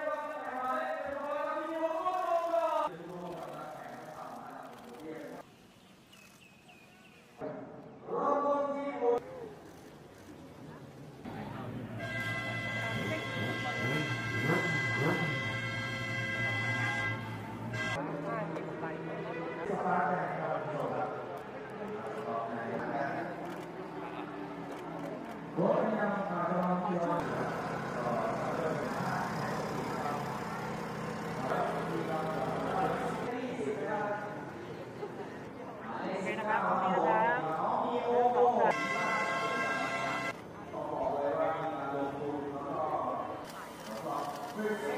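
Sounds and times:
voices chattering: 0:09.2 - 0:44.9.

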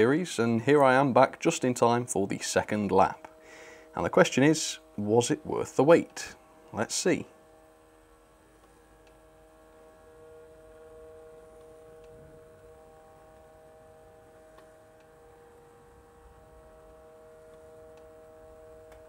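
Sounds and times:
model train motor humming: 0:00.0 - 0:19.0.

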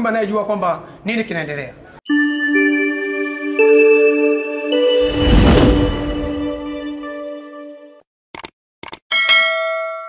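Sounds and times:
bright bell-like ding: 0:09.1 - 0:10.0.

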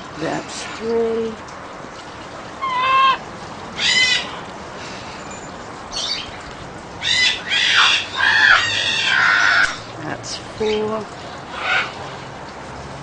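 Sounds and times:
macaw squawking: 0:02.6 - 0:03.2, 0:03.8 - 0:04.4, 0:05.9 - 0:06.4, 0:07.0 - 0:09.9.

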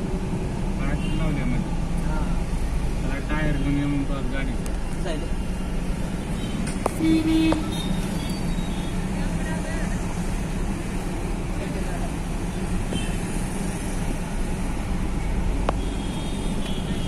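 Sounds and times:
road noise: 0:00.0 - 0:17.0
street traffic: 0:00.0 - 0:17.0.

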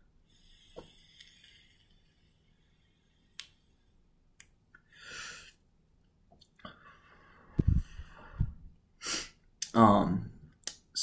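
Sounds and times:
faint soft hiss: 0:00.0 - 0:11.0
small sharp clicks of vape: 0:03.3 - 0:03.6.

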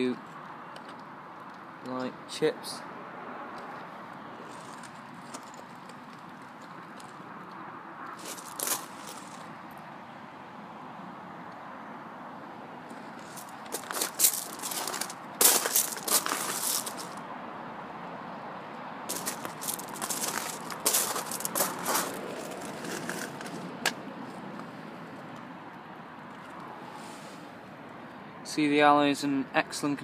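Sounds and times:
footsteps crunching on gravel: 0:08.2 - 0:09.5, 0:13.0 - 0:17.2, 0:19.1 - 0:23.9.

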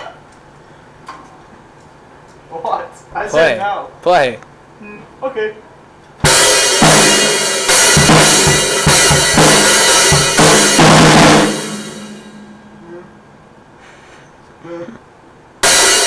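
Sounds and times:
snare and bass drum hits: 0:06.2 - 0:12.6
cymbal crashes: 0:06.3 - 0:13.8, 0:15.6 - 0:16.0.

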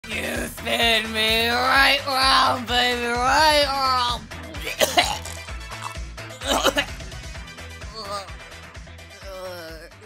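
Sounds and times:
person coughing: 0:04.6 - 0:07.0.

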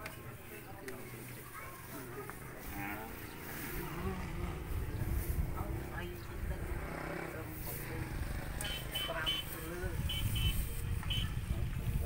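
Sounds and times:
faint voices talking: 0:00.0 - 0:12.0
low uneven rumble: 0:02.6 - 0:08.6.

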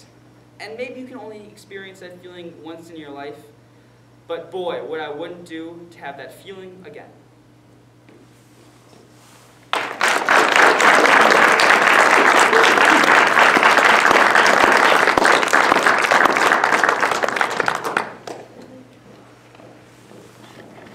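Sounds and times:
audience applauding: 0:09.7 - 0:18.6.

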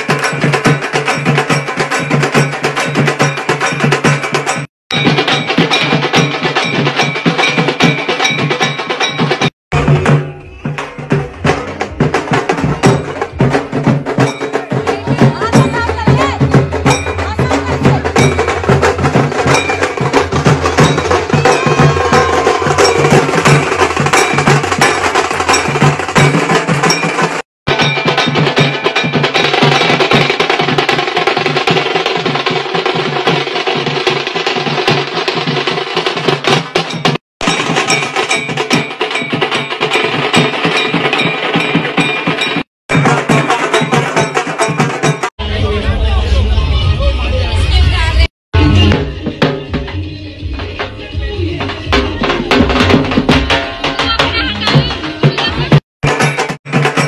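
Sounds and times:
dhol drums in dance rhythm: 0:00.0 - 0:45.4, 0:48.6 - 0:57.0.

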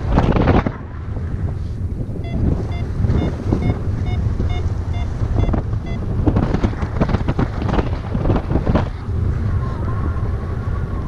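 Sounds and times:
wind rush on microphone: 0:00.0 - 0:11.0
variometer beeping: 0:02.2 - 0:06.4.

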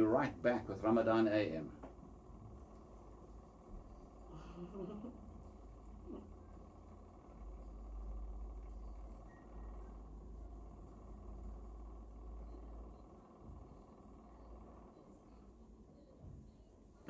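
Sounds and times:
low rumble with faint hiss: 0:00.0 - 0:17.0.

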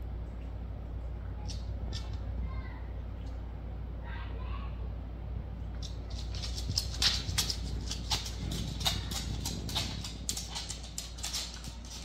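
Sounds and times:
low steady hum: 0:00.0 - 0:12.0
dog claws clicking on wooden floor: 0:05.8 - 0:12.0.

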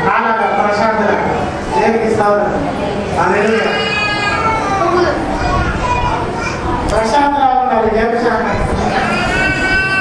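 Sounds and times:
man speaking through microphone: 0:00.0 - 0:04.1, 0:06.9 - 0:09.1
voices praying aloud: 0:00.0 - 0:10.0.

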